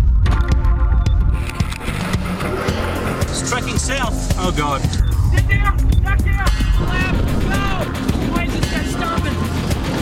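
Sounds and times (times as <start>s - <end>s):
dramatic music with held chords: 0.0s - 10.0s
vehicle noise: 1.1s - 8.7s
storm wind rumble: 4.9s - 8.6s.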